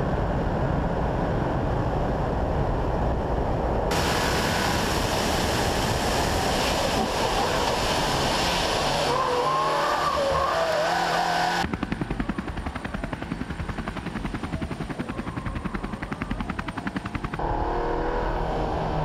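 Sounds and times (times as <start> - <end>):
racing car engine: 7.0 - 11.7, 17.4 - 19.0
tyre squeal: 9.0 - 11.6
rapid beating pulses: 11.4 - 17.6.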